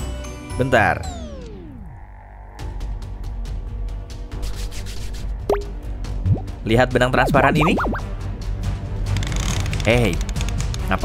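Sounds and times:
background music with steady beat: 2.8s - 9.2s
comic descending pitch effect: 7.3s - 8.0s.

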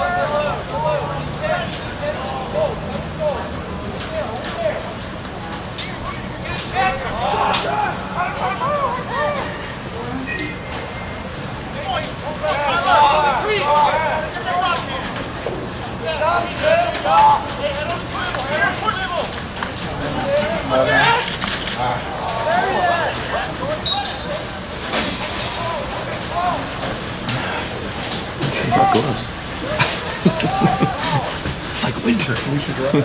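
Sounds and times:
voices calling out and talking: 0.0s - 33.0s.

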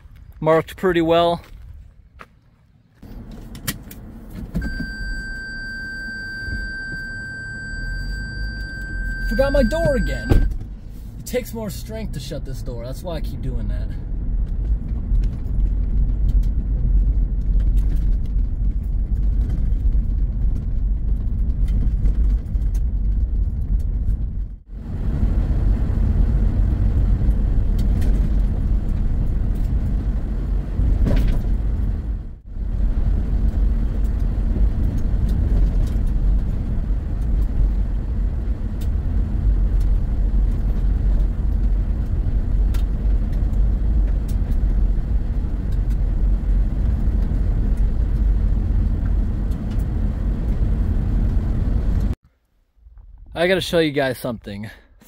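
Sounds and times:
tyres rumbling on gravel: 0.0s - 3.3s.

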